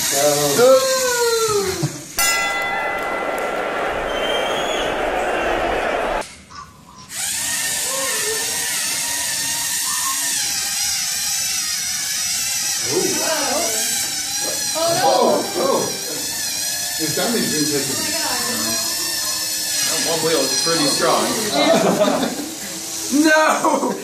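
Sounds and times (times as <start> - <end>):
small electric motors whirring: 7.0 - 24.0.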